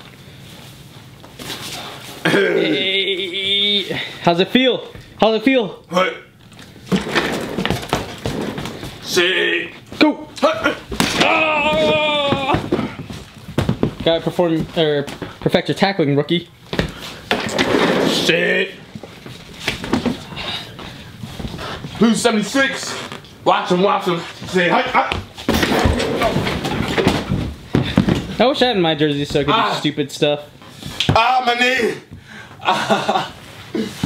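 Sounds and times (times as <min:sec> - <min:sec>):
sneakers scuffling on hardwood floor: 0:11.8 - 0:15.6, 0:24.2 - 0:28.4.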